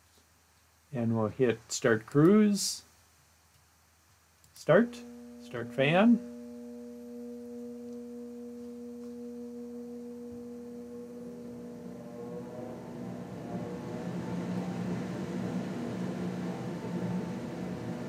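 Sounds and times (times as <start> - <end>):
fan motor hum: 4.6 - 18.0.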